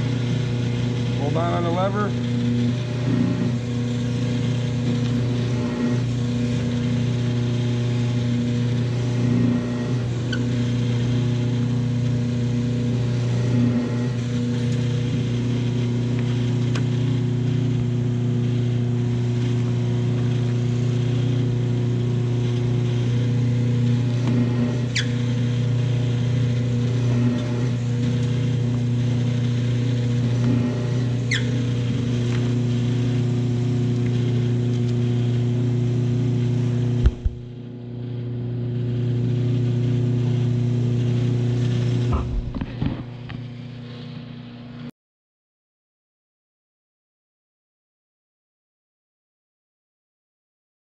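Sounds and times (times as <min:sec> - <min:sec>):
paper drill motor humming: 0:00.0 - 0:43.9.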